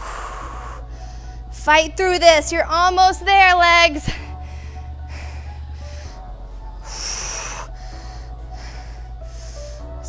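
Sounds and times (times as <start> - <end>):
woman breathing hard: 0.0 - 1.6, 4.1 - 10.0
workout music with low bass: 0.0 - 10.0.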